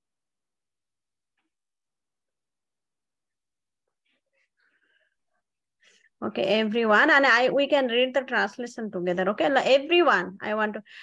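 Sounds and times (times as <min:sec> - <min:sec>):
faint breathing: 0:04.0 - 0:06.2.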